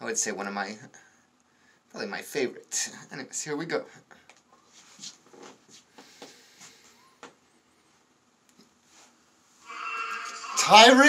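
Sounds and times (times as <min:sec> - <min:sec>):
person rustling and scuffing: 0:04.6 - 0:07.0.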